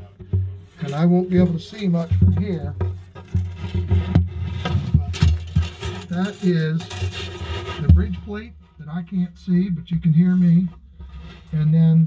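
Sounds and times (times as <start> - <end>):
phone scraping inside guitar body: 5.5 - 7.9, 11.0 - 11.6.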